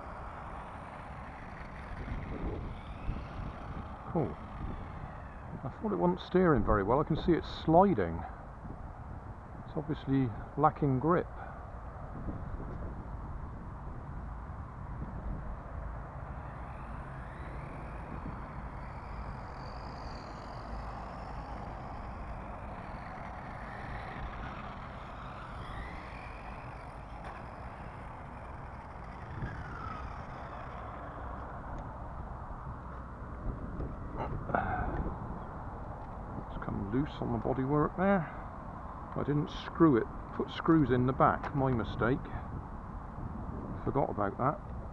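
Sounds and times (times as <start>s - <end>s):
rc car electric motor whining: 0.0s - 6.4s, 15.1s - 36.1s
steady low rumble: 0.0s - 44.9s.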